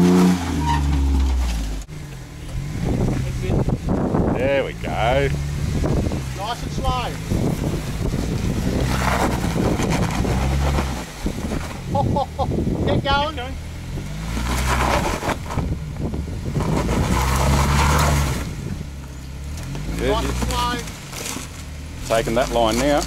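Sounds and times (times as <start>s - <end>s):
engine revving: 0.0s - 23.0s
voices calling out: 2.2s - 8.1s, 19.7s - 21.3s.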